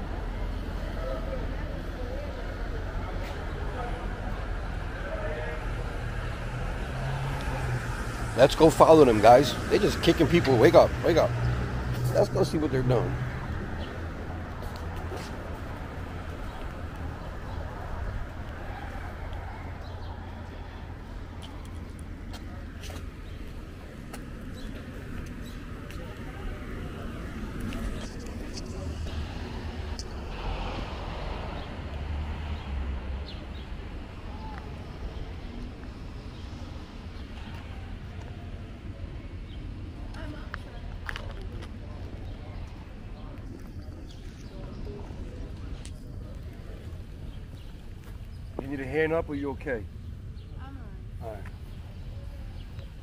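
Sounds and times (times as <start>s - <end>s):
faint distant voices: 0.0s - 53.0s
street traffic noise: 0.0s - 53.0s
vehicle engine humming: 0.0s - 53.0s.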